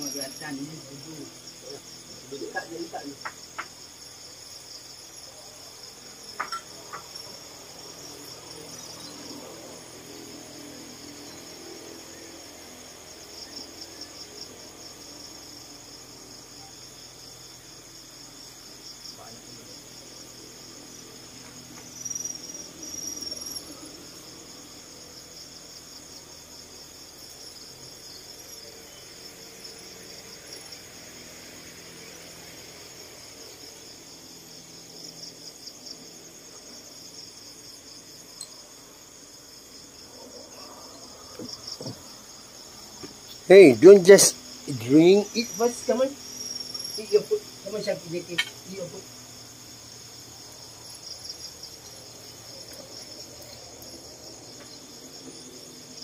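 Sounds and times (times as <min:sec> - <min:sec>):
crickets chirring: 0:00.0 - 0:56.0.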